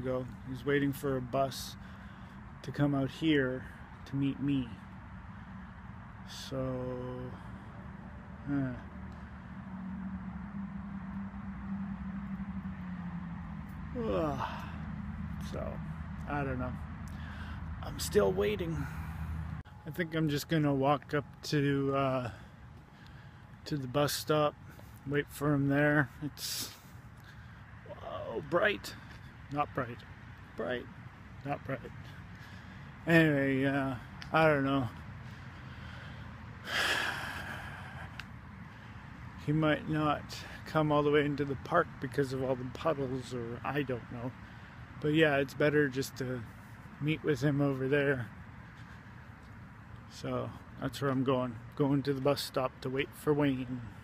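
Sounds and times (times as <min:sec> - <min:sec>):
man sighing: 0:14.0 - 0:14.9, 0:36.6 - 0:38.2.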